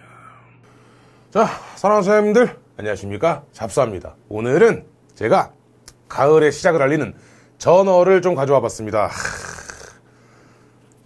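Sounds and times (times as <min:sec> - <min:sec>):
man sighing: 0:09.1 - 0:10.3.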